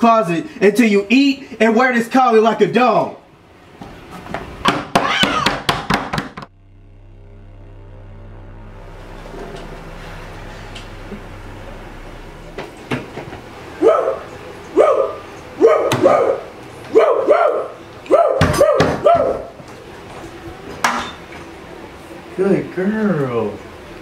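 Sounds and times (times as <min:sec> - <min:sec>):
sharp knocks: 0:04.3 - 0:06.5
woman barking like a dog: 0:14.8 - 0:19.5.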